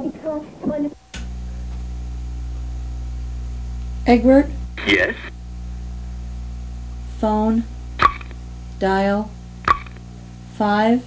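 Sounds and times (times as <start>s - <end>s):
low electrical hum: 0.0s - 11.0s
short click: 8.0s - 8.4s.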